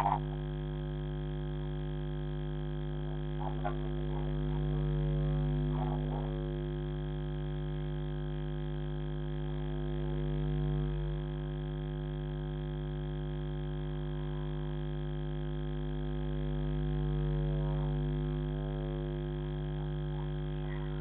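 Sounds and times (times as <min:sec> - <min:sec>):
faint voice: 0:00.0 - 0:00.6, 0:03.0 - 0:06.6, 0:13.8 - 0:21.0
low electrical hum: 0:00.0 - 0:21.0.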